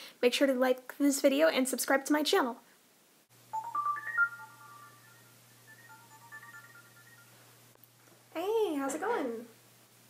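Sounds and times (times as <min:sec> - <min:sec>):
phone ringtone melody: 0:03.5 - 0:07.6.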